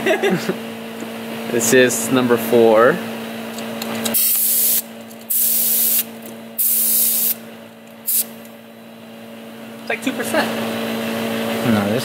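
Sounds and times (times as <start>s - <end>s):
steady hum: 0.0s - 12.0s
compressed air hissing: 4.2s - 7.4s, 8.0s - 8.4s.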